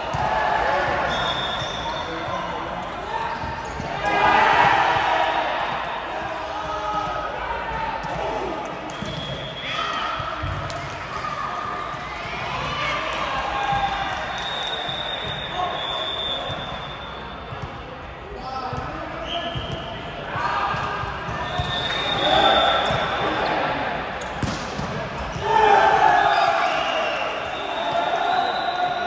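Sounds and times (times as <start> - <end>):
volleyball bouncing on court floor: 0.0 - 2.4, 8.0 - 15.5, 16.5 - 18.0, 20.6 - 23.3, 24.2 - 25.8
players calling and talking: 0.0 - 29.0.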